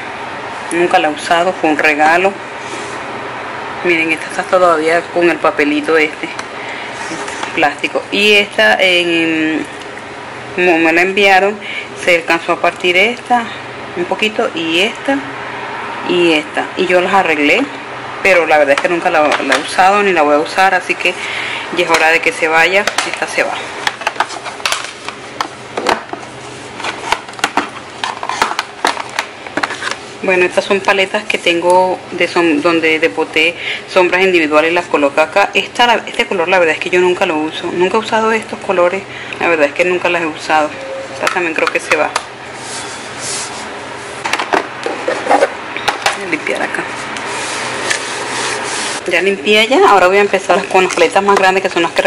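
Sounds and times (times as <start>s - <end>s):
hand scrubbing drawer surface: 47.3s - 49.0s.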